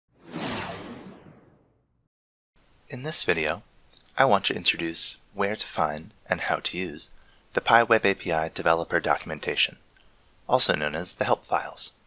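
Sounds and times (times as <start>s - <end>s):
whoosh sound effect: 0.1s - 1.8s.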